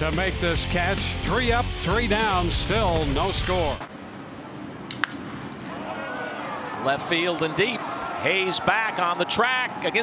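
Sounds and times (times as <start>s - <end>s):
ballpark ambience: 0.0s - 10.0s.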